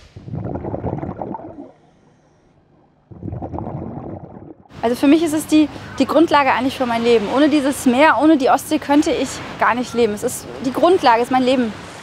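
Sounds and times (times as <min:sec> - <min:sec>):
underwater bubbling breath: 0:00.0 - 0:04.7.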